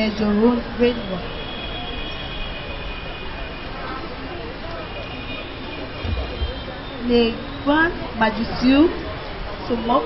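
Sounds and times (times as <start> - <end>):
machine background noise: 5.6 - 8.9.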